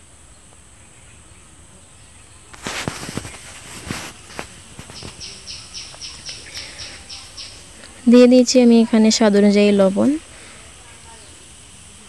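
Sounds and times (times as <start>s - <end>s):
bird chirping: 4.8s - 8.1s.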